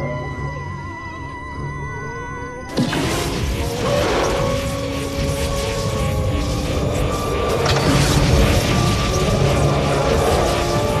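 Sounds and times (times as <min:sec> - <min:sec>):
background music with held tones: 0:00.0 - 0:04.7
crackling energy stream rush: 0:02.7 - 0:11.0.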